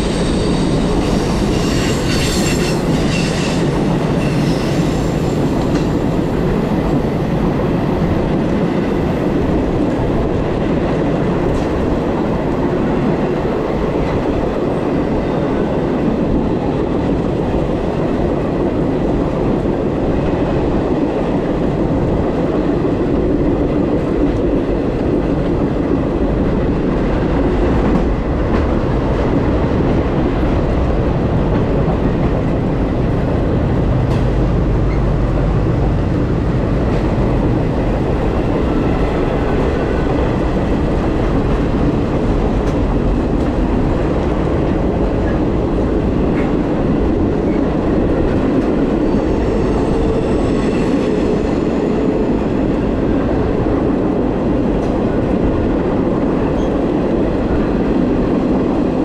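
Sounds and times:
freight train passing alongside: 0.0s - 59.0s
train rolling rumble: 0.0s - 59.0s.

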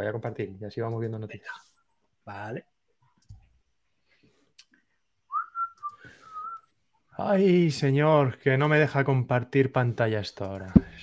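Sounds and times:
person whistling: 5.3s - 6.7s.

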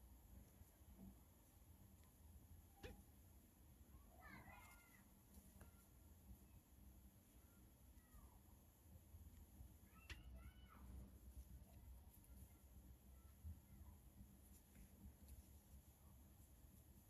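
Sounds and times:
faint gliding animal calls: 9.8s - 14.0s.

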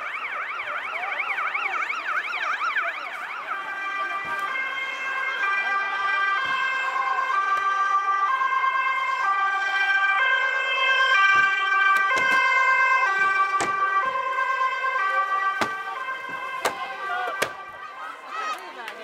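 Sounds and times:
police two-tone siren: 0.0s - 18.2s.

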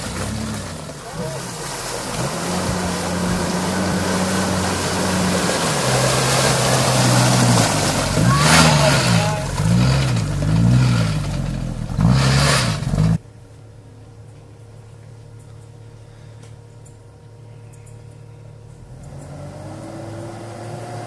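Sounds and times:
engine revving: 0.0s - 13.2s, 18.8s - 21.0s
wheels splashing in muddy water: 0.0s - 13.4s, 18.3s - 21.0s.

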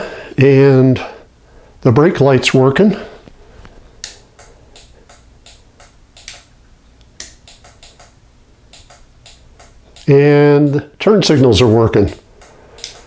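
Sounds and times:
turn signal relay clicking: 4.0s - 10.8s, 11.6s - 13.0s.

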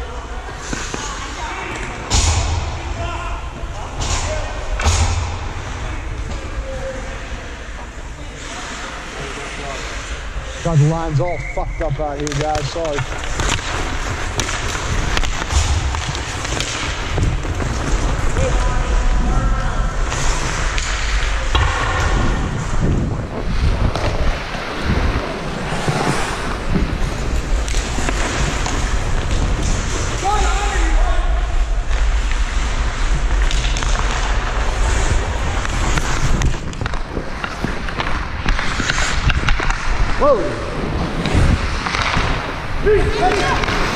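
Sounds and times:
sticks and puck clacking: 0.4s - 2.5s, 3.5s - 19.1s, 20.0s - 23.0s, 23.8s - 30.9s, 31.9s - 43.9s
skate blades scraping on ice: 8.2s - 19.1s, 23.5s - 30.8s, 32.0s - 43.9s
wind rumbling on microphone: 17.0s - 30.2s, 31.0s - 43.9s.

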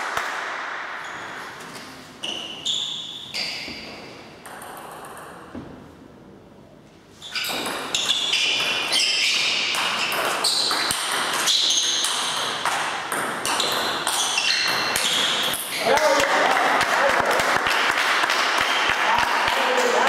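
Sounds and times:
sneakers squeaking on floor: 1.0s - 4.4s, 7.1s - 15.9s
ball bouncing on table: 3.6s - 5.9s, 7.4s - 15.7s.

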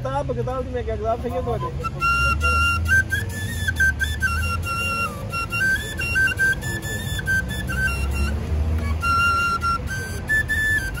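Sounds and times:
bamboo flute slow melody: 1.4s - 11.0s.

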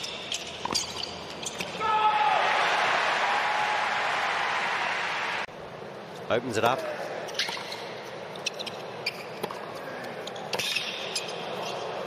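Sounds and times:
arena background noise: 0.0s - 12.0s.

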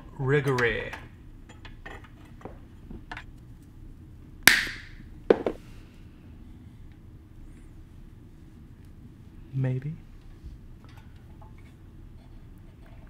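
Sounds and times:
sharp metal snaps: 4.5s - 5.0s.

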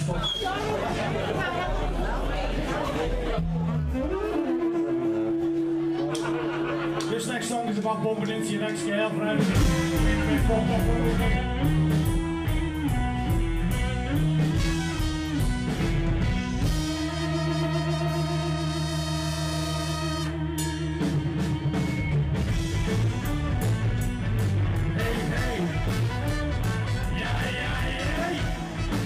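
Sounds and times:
live rock band playing: 3.0s - 29.0s.

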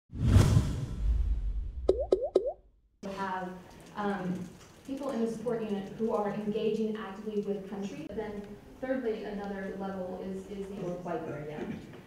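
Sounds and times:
whoosh with deep rumble: 0.1s - 1.9s.

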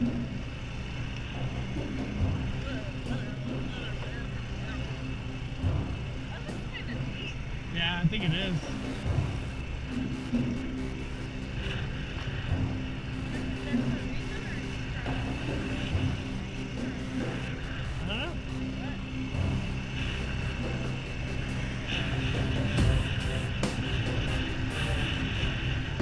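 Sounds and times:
quad bike engine running: 0.0s - 26.0s.

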